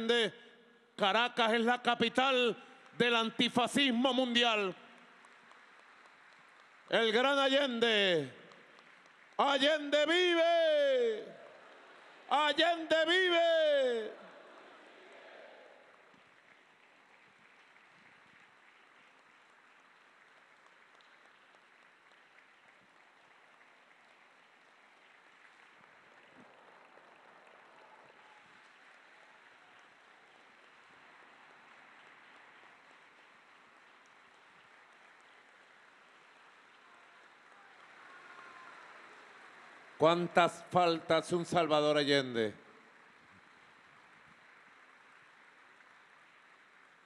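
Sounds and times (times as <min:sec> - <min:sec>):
faint crowd applause: 0:01.5 - 0:47.0.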